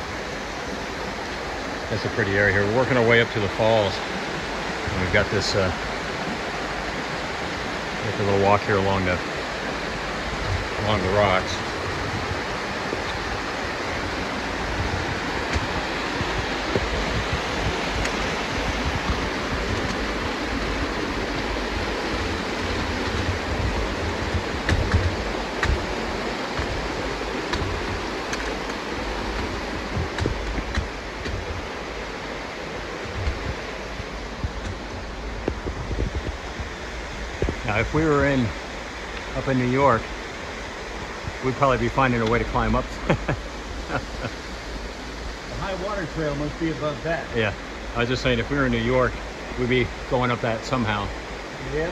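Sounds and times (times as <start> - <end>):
creek rushing over rocks: 0.0 - 51.9.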